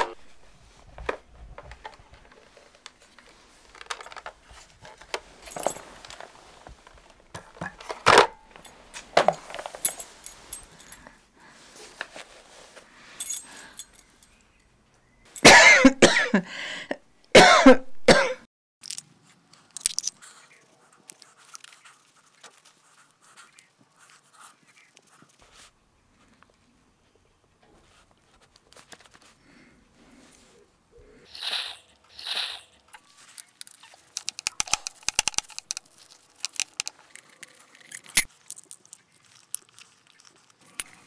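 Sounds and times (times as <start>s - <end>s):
person coughing loudly: 15.4s - 16.5s, 17.4s - 18.4s
small hard objects clicking: 18.8s - 20.2s, 32.2s - 41.0s.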